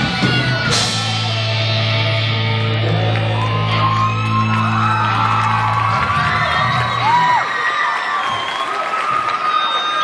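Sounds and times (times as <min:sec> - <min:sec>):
audience whooping and shouting: 0:00.0 - 0:10.0.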